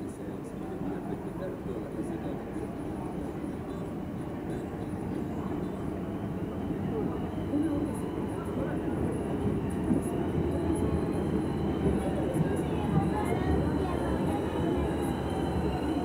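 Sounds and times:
train wheels rumbling on rails: 0:00.6 - 0:16.0.

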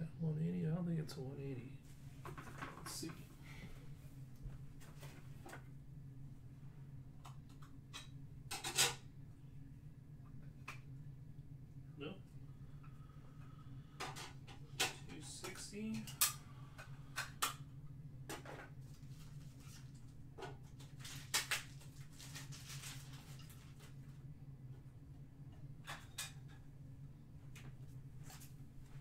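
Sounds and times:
low hum: 0:00.0 - 0:20.9.

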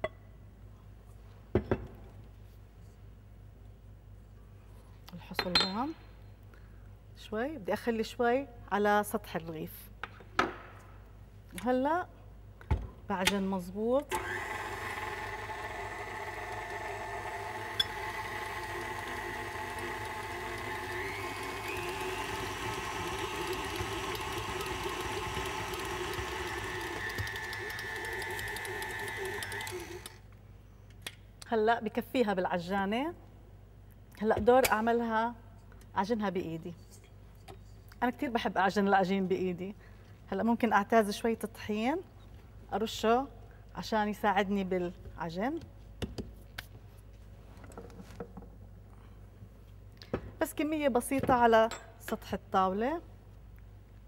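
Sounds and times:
stand mixer motor whining: 0:14.1 - 0:30.2.

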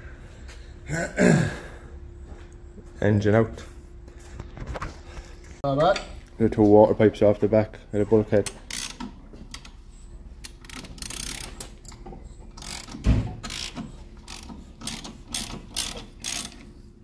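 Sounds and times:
ratchet wrench clicking: 0:08.4 - 0:09.8, 0:10.4 - 0:12.0, 0:12.6 - 0:16.7.

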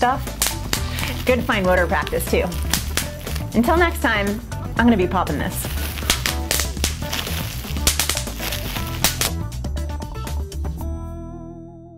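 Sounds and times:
upbeat music: 0:00.0 - 0:11.2
bubble wrap popping: 0:00.2 - 0:04.3, 0:05.2 - 0:09.5.

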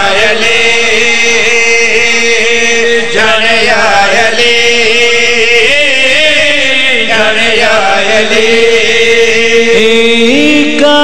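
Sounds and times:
man chanting through loudspeakers: 0:00.0 - 0:11.0.

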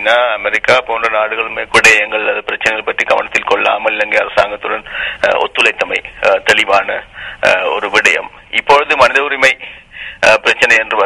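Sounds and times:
man speaking over telephone line: 0:00.0 - 0:09.6, 0:10.2 - 0:11.0.

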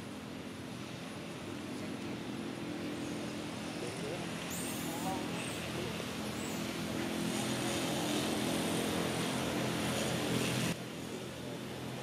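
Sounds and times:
distant motor engine drone: 0:00.0 - 0:12.0.

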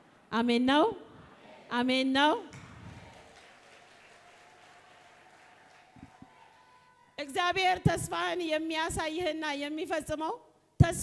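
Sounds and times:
faint applause: 0:02.5 - 0:07.3.

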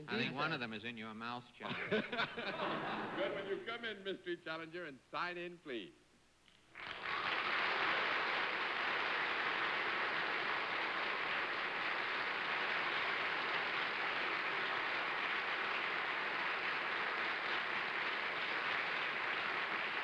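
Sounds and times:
studio audience applauding: 0:06.7 - 0:20.0.

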